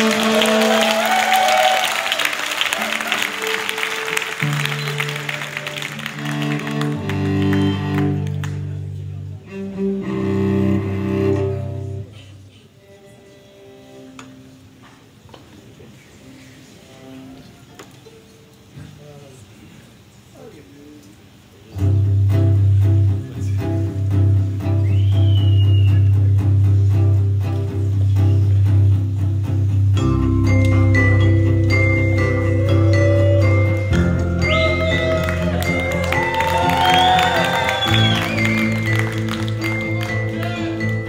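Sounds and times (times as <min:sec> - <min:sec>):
orchestral strings low chord: 0:03.2 - 0:12.2, 0:26.2 - 0:41.0
marimba notes: 0:29.9 - 0:41.0.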